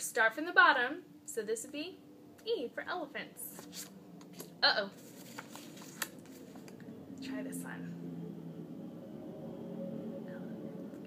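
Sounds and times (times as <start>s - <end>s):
paper card rustling and ticking: 3.5s - 6.8s.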